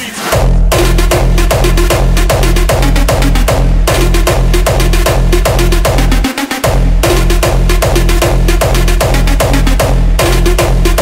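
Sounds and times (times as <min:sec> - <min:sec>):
electronic synth layers: 0:00.0 - 0:11.0
heavy kick drum with booming bass: 0:00.3 - 0:11.0.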